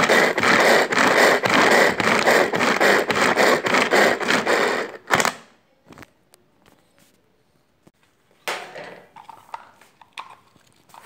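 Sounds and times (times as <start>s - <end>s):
vegetable chopper whirring: 0.0s - 5.4s.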